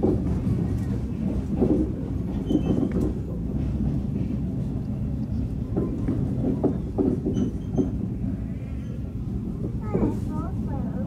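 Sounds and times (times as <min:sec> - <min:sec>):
knocks from rails: 0:00.0 - 0:04.3, 0:05.7 - 0:08.0
train rumbling: 0:00.0 - 0:11.0.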